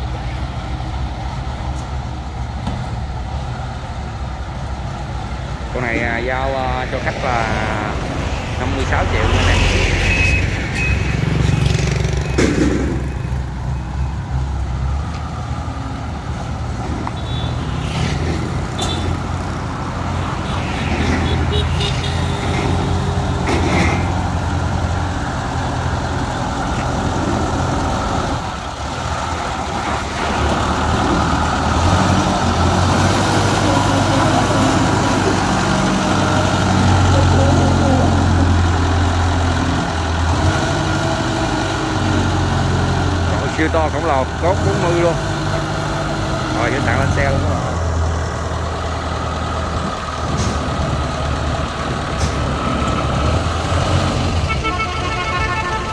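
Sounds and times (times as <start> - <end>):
tractor diesel engine under load: 0.0 - 55.9.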